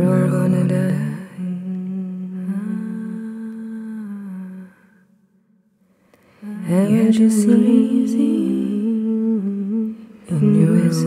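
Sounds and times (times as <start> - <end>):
person humming a note: 1.4 - 4.6.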